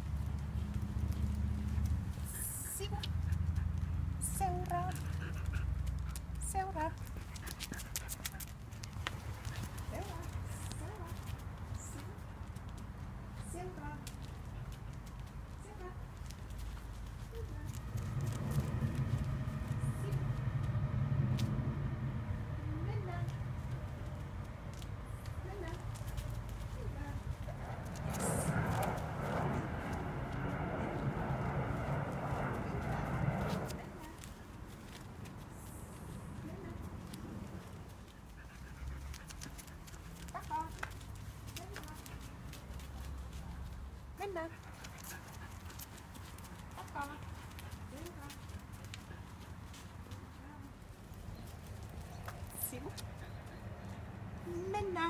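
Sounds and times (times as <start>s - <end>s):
footsteps on asphalt: 4.8s - 22.5s, 23.1s - 44.0s
low rumble: 16.5s - 37.8s.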